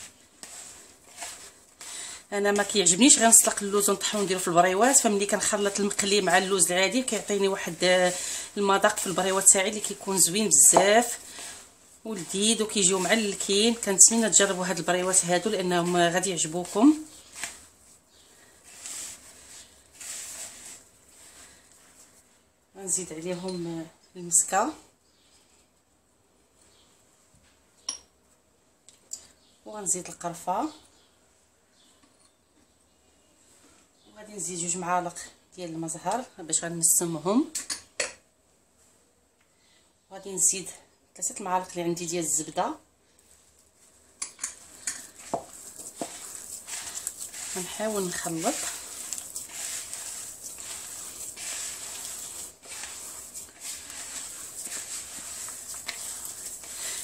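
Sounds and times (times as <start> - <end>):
hand squishing moist filling: 45.0 - 57.0.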